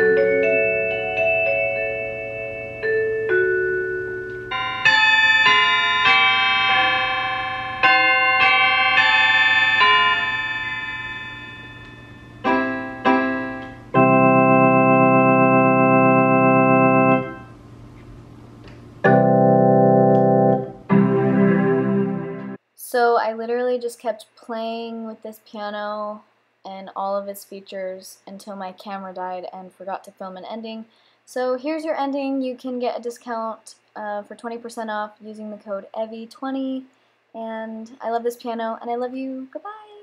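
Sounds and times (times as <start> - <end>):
organ-like held chords: 0.0 - 4.9, 12.2 - 17.8, 18.9 - 22.6
digital piano notes: 0.0 - 17.6, 18.9 - 22.6.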